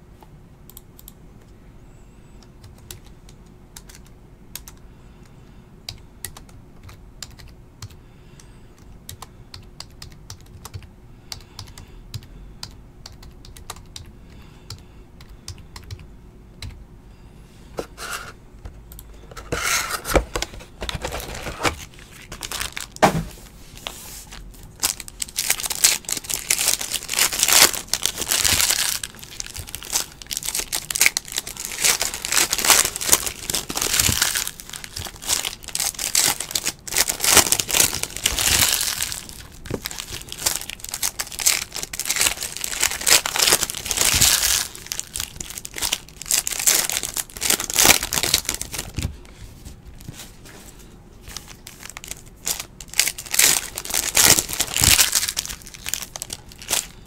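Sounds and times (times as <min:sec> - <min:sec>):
foil wrapper crinkling and tearing: 0:20.9 - 0:23.0, 0:24.3 - 0:49.2, 0:51.3 - 0:57.0.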